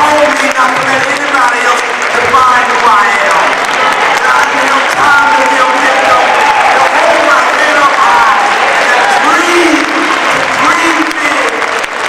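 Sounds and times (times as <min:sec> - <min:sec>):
man shouting a speech: 0:00.0 - 0:11.7
audience applauding: 0:00.0 - 0:12.0.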